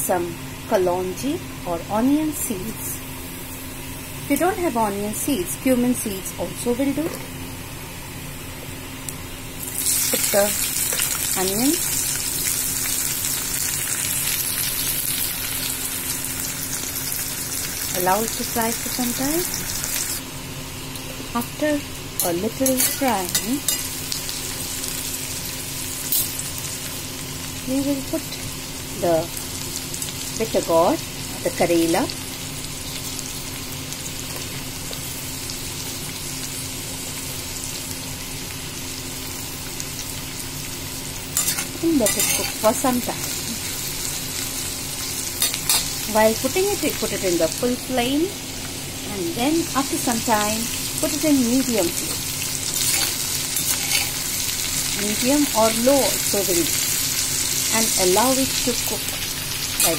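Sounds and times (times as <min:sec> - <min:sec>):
onions sizzling in oil: 0:00.0 - 0:59.9.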